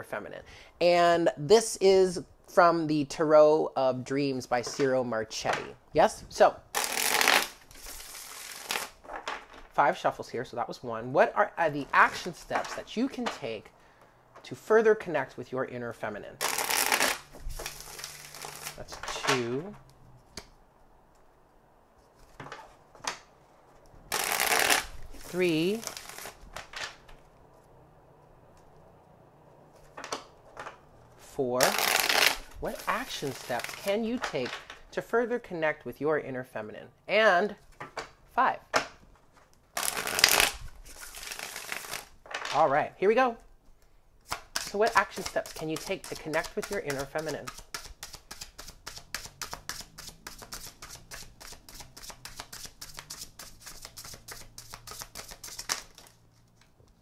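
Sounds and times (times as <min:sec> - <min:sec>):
cards being shuffled: 0:06.7 - 0:09.6, 0:11.8 - 0:13.5, 0:16.4 - 0:21.3, 0:22.0 - 0:28.8, 0:29.6 - 0:34.8, 0:39.1 - 0:42.6, 0:44.2 - 0:57.0
card deck rustling and tapping: 0:44.2 - 0:56.8.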